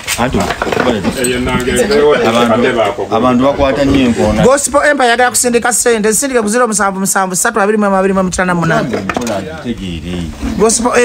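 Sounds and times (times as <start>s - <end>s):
man talking: 0.1s - 5.2s, 8.6s - 11.0s.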